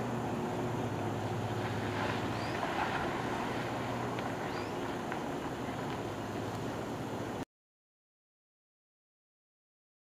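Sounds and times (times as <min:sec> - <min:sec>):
diesel engines humming: 0:00.0 - 0:07.4.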